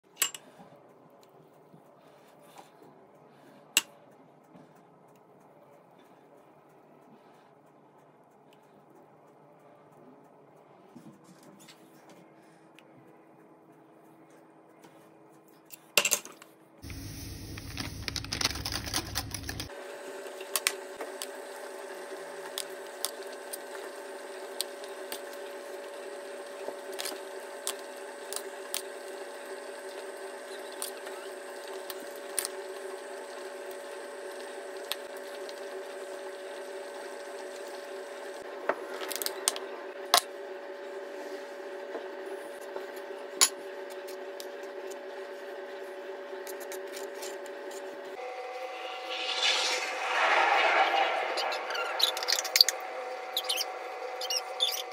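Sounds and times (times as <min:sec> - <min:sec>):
steady tonal hum: 0:48.2 - 0:54.9.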